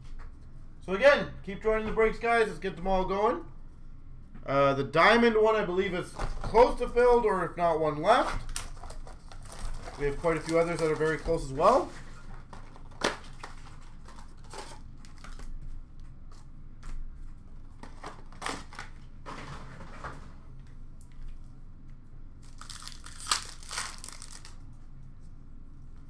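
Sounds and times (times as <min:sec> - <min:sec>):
wrappers crinkling and tearing: 0:08.4 - 0:15.6, 0:22.4 - 0:24.6.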